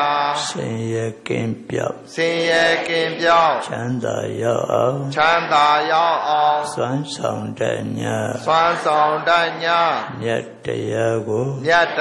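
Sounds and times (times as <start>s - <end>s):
elderly man chanting into microphone: 0.0s - 12.0s.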